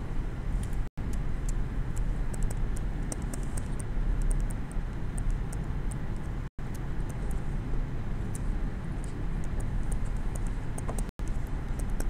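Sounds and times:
low room rumble: 0.0 - 12.0
stylus tapping on tablet screen: 9.4 - 12.0.

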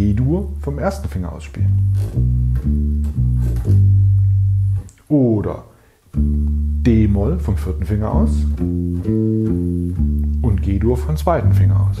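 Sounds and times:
electric bass plucked notes: 0.0 - 12.0.

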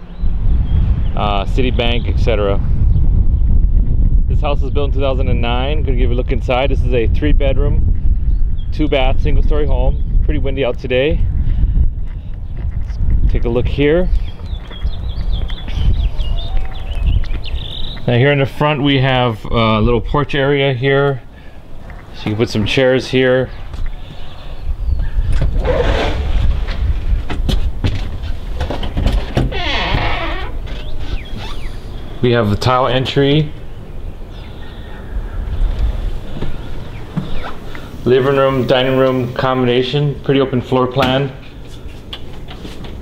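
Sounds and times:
wind buffeting microphone: 0.0 - 43.0
small birds chirping: 13.9 - 18.6, 21.1 - 25.5, 29.5 - 39.4.

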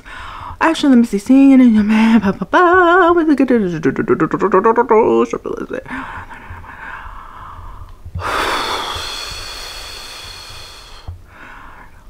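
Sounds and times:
woman breathing: 0.0 - 0.6, 5.9 - 12.0
long loud exhale: 8.2 - 11.9.

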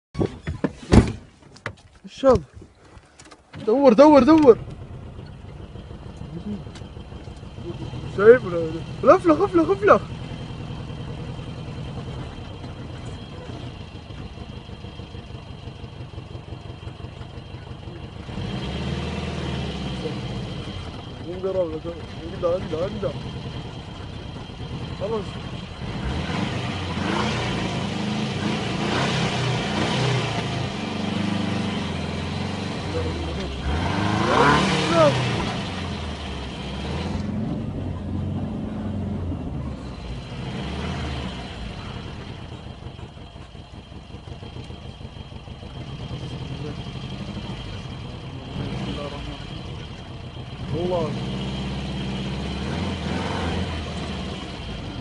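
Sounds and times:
car engine running: 0.2 - 55.0
voices calling out: 2.0 - 18.5, 26.9 - 55.0.

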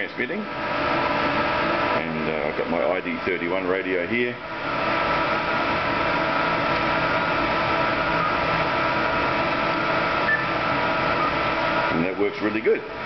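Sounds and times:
electrical hum and hiss: 0.0 - 13.0.

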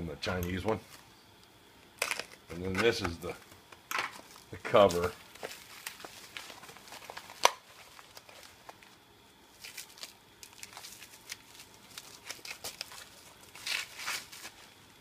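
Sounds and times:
plastic wrap crinkling: 4.2 - 14.9.

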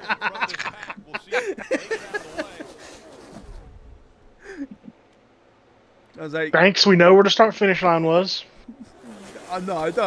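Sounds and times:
men laughing breathily: 0.0 - 3.1, 4.4 - 5.0.

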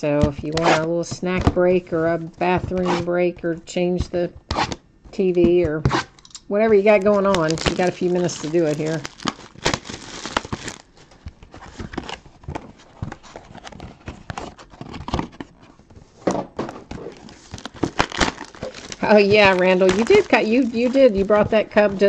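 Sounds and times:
wrapping crinkling: 6.8 - 15.5, 16.9 - 22.0
cardboard boxes being opened: 6.9 - 16.0, 16.7 - 22.0.

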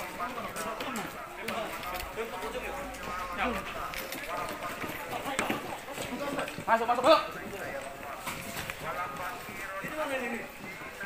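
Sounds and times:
hurried footsteps on pavement: 0.0 - 11.0
men talking: 0.0 - 11.0.

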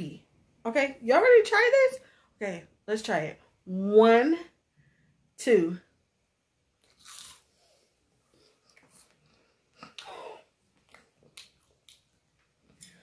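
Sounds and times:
cracker chewing crunches: 6.8 - 7.5.

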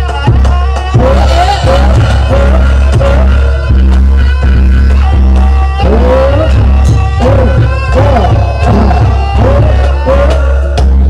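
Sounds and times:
drum strokes: 0.0 - 11.0
melody bending in pitch: 0.3 - 10.6.

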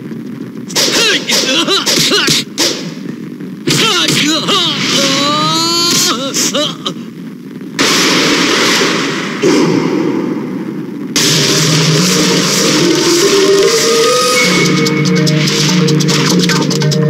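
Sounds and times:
loud noisy hits: 0.7 - 5.3, 7.8 - 16.5
dramatic background music: 11.2 - 17.0.

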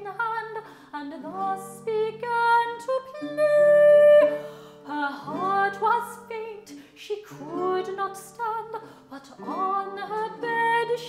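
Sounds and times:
soprano singing a ballad: 0.0 - 11.0.

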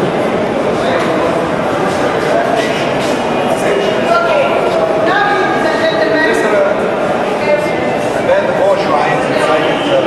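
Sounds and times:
people talking indoors: 0.0 - 10.0.

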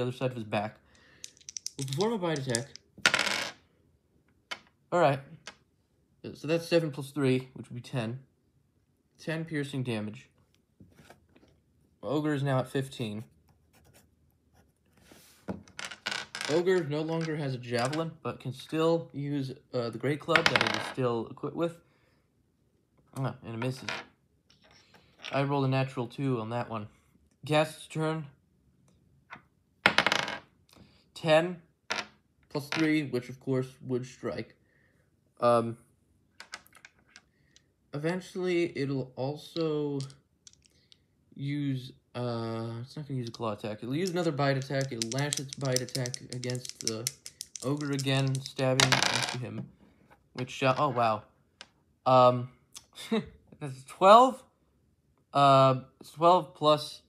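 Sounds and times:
dice clattering on a table: 1.0 - 3.6, 4.5 - 5.6, 15.5 - 18.1, 20.3 - 21.0, 23.6 - 25.4, 29.3 - 30.5, 31.9 - 33.0, 36.4 - 37.7, 40.0 - 41.0, 43.3 - 49.7.

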